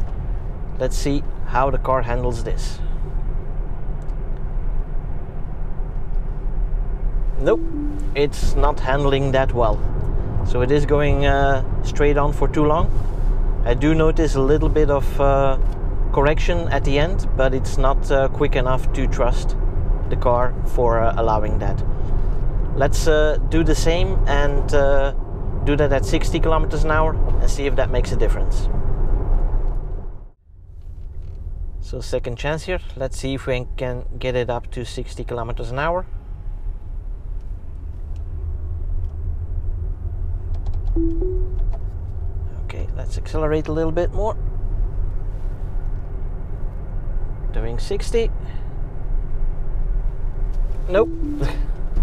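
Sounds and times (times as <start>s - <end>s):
road and tyre rumble: 0.0s - 7.5s, 8.2s - 41.0s, 41.6s - 52.0s.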